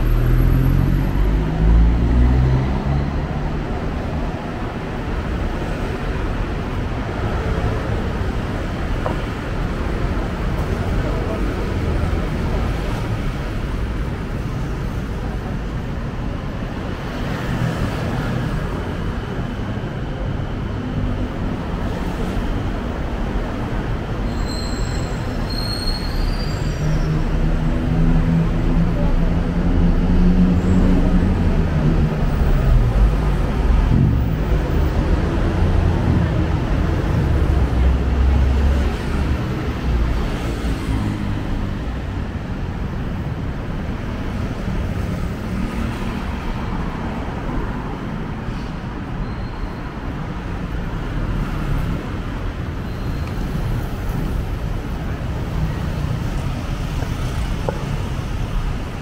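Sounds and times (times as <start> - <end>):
busy road traffic: 0.0 - 59.0.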